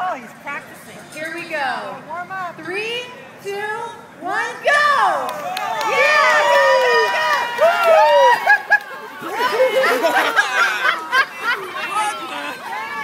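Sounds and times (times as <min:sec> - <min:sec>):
crowd shouting and cheering: 0:04.5 - 0:13.0.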